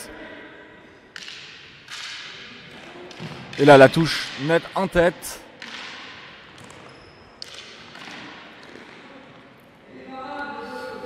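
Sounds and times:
echoing sports hall noise: 0:00.0 - 0:11.0.

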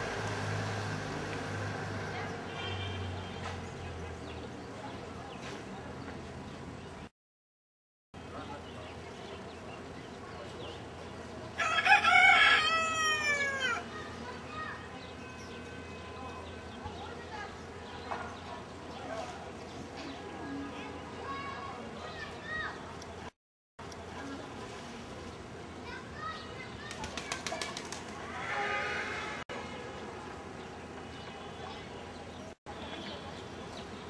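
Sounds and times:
faint distant voices: 0:01.9 - 0:07.1, 0:08.2 - 0:34.0
rooster crowing: 0:11.6 - 0:13.8.

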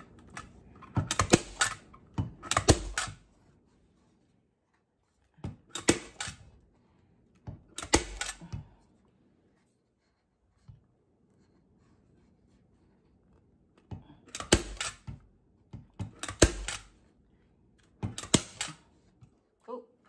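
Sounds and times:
staple gun firing: 0:01.1 - 0:01.8, 0:02.4 - 0:03.2, 0:05.7 - 0:06.4, 0:07.8 - 0:08.4, 0:14.3 - 0:15.0, 0:16.1 - 0:16.9, 0:18.1 - 0:18.8.

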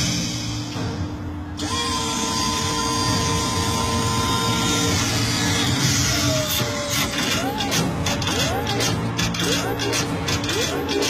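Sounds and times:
motorized mechanism whining: 0:00.2 - 0:11.0.

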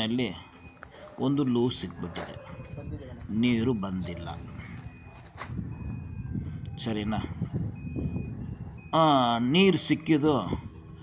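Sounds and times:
low engine rumble: 0:00.0 - 0:11.0
reversing alarm beeps: 0:00.0 - 0:11.0.

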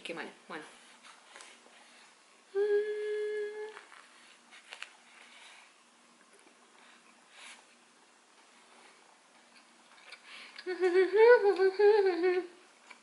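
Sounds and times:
woman humming: 0:02.5 - 0:04.0, 0:10.6 - 0:12.6.

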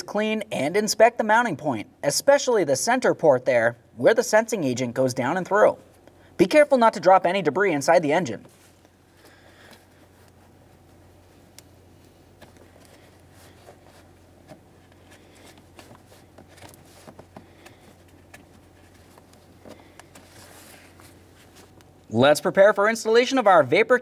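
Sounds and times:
low steady hum: 0:00.0 - 0:24.0.

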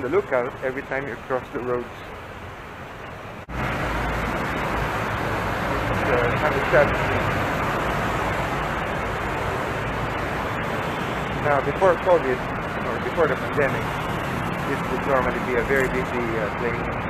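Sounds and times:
city traffic noise: 0:00.0 - 0:17.0.

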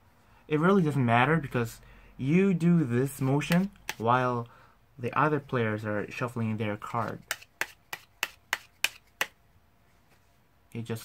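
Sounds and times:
playing cards snapping: 0:07.0 - 0:09.4.

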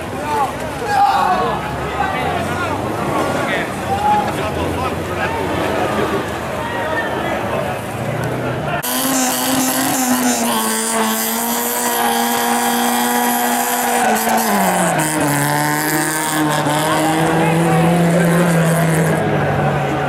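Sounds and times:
car engine revving: 0:07.4 - 0:20.0.

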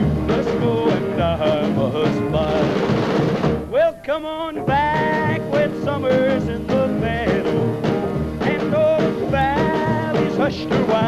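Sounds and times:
person singing: 0:00.0 - 0:02.8, 0:03.7 - 0:11.0
rock band playing: 0:00.0 - 0:03.7, 0:04.6 - 0:11.0.

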